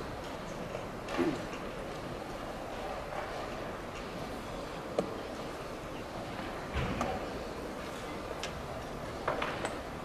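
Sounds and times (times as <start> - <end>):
busy hall room noise: 0.0 - 10.0.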